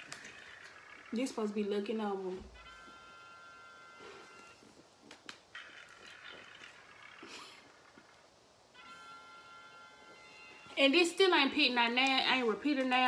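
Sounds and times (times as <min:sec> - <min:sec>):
faint electronic tone: 0:02.4 - 0:04.8, 0:05.6 - 0:10.9.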